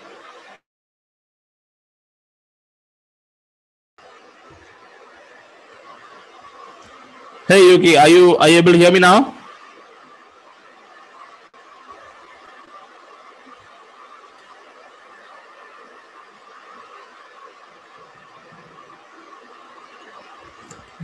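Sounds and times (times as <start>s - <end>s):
faint microphone hiss: 4.0s - 21.0s.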